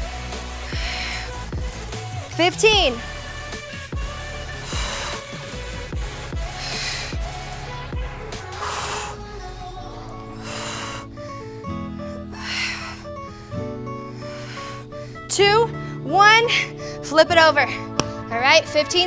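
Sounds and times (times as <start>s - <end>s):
workout music with steady beat: 0.0s - 19.0s
woman breathing sharply: 0.3s - 1.6s, 4.4s - 5.7s, 6.4s - 16.0s, 16.6s - 17.1s.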